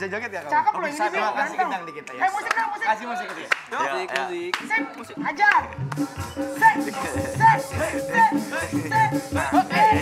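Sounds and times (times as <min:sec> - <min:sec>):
sharp hand claps: 0:02.4 - 0:04.7, 0:05.5 - 0:06.3
voices chanting: 0:03.8 - 0:10.0.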